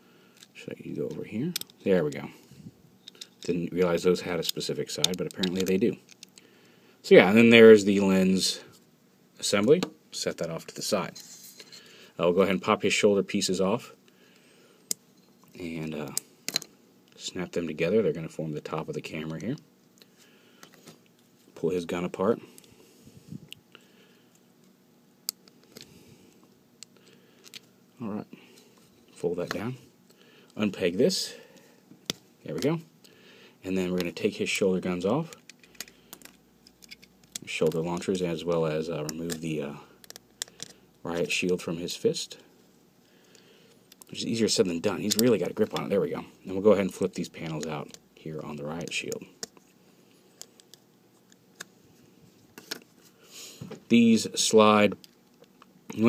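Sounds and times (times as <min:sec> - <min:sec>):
plastic toy parts clicking: 0:40.0 - 0:40.8.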